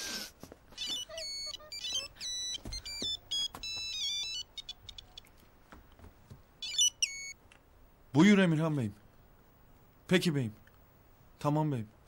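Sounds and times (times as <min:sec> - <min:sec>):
monophonic phone ringtone: 0:00.8 - 0:05.2, 0:06.6 - 0:07.4.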